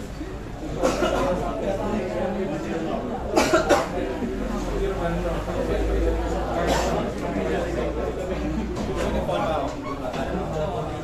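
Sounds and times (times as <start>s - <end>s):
low background chatter: 0.0s - 11.0s.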